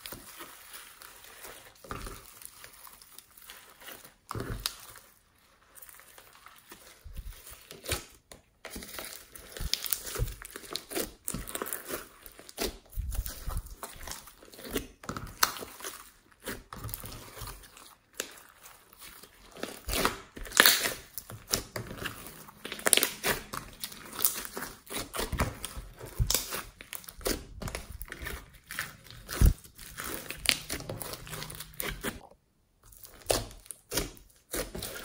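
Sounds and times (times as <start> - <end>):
slime squelching and crackling: 0.0 - 35.0.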